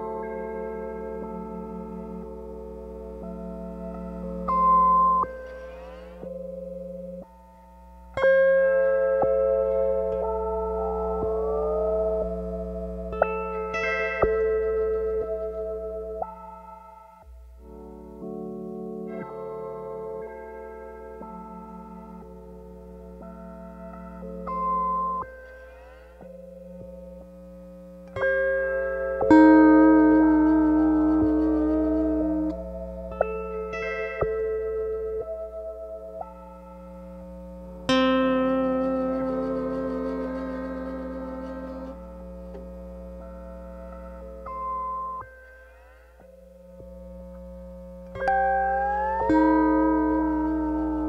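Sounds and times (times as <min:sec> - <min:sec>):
low mains hum: 0:00.0 - 0:51.0
processed lap steel guitar: 0:00.0 - 0:51.0.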